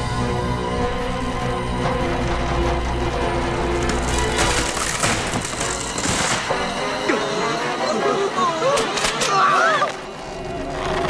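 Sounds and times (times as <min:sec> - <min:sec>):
dramatic orchestral music: 0:00.0 - 0:11.0
crashing splintering noise: 0:03.7 - 0:06.7.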